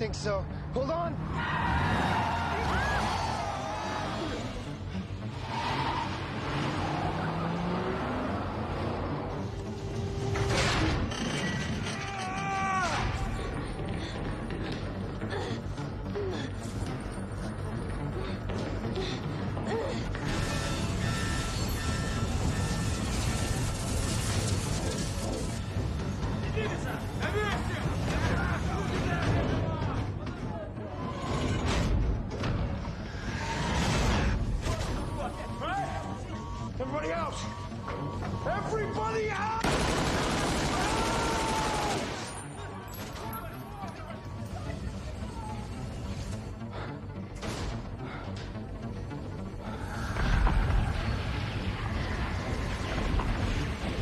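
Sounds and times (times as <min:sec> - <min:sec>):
low rumbling film score: 0:00.0 - 0:54.0
tense background music: 0:00.0 - 0:54.0
car driving: 0:00.6 - 0:11.2.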